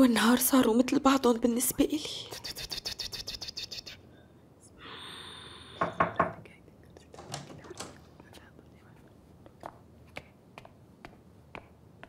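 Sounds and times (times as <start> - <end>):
woman whispering: 1.8 - 4.0, 6.4 - 9.2.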